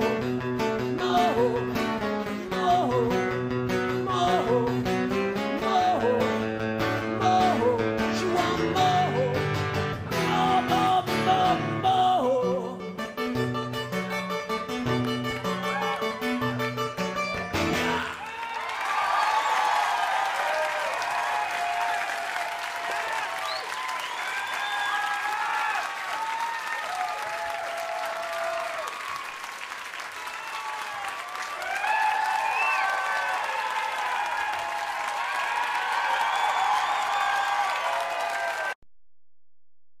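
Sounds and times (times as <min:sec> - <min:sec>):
whoops and shouts: 0:15.4 - 0:16.5, 0:17.9 - 0:29.4, 0:30.2 - 0:38.8
audience clapping: 0:17.4 - 0:38.8.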